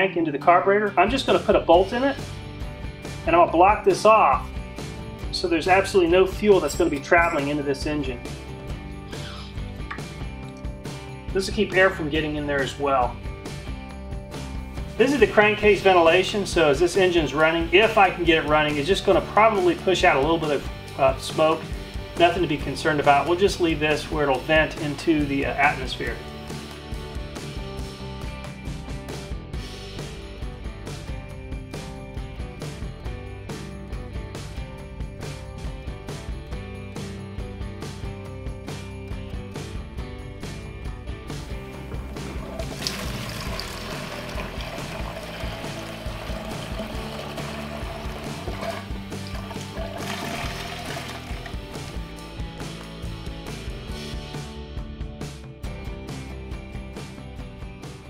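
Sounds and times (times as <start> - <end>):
background music: 0.0 - 58.0
gasoline pouring into glass jar: 42.0 - 52.0.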